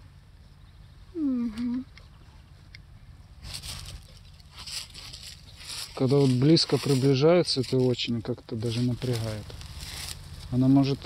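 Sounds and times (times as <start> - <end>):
jacket rustling against microphone: 3.4 - 10.6.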